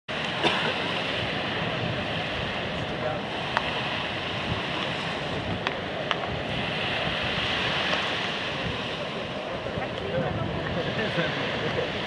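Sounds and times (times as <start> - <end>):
ocean surf: 0.1 - 12.0
wind on microphone: 0.1 - 12.0.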